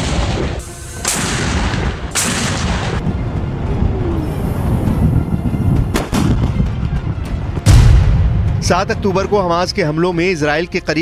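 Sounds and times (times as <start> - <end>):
mortar blasts with echo: 0.0 - 3.0.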